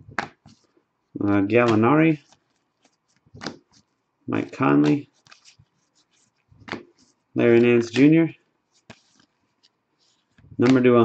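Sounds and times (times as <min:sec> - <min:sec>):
card edges ticking: 0:01.3 - 0:05.6, 0:06.6 - 0:08.2, 0:10.6 - 0:11.0
card swishing off a stack: 0:01.6 - 0:03.8, 0:04.5 - 0:08.2, 0:10.1 - 0:10.9.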